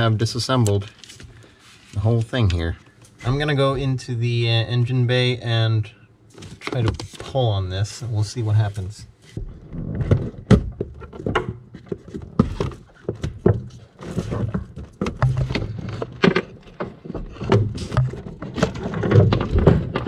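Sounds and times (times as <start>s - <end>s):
plastic connectors knocking and clattering: 10.0s - 20.0s.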